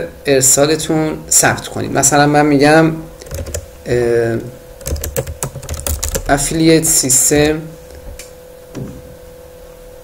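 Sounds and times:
computer keyboard typing: 0:03.2 - 0:03.7, 0:04.8 - 0:06.6.

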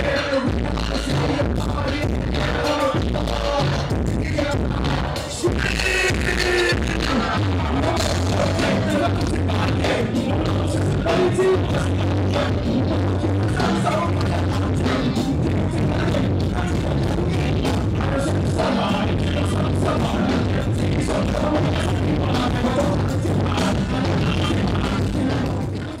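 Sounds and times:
live hip hop music: 0:00.0 - 0:26.0.

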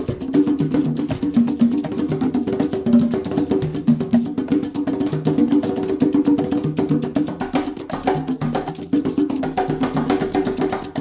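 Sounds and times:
congas played by hand: 0:00.0 - 0:11.0.

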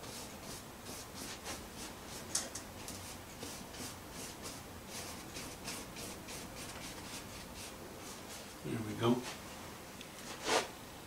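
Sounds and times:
paintbrush scratching on canvas: 0:00.0 - 0:02.3, 0:02.9 - 0:08.6.

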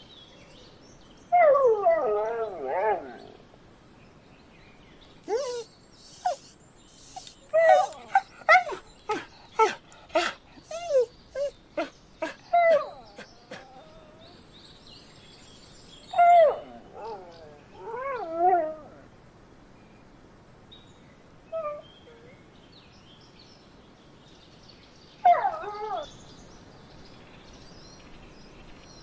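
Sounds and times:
puppies crying: 0:05.3 - 0:14.3.

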